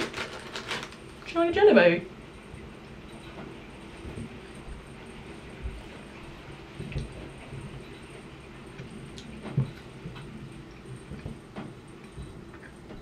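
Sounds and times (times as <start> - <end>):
faint chewing and mouth sounds: 8.7 - 13.0.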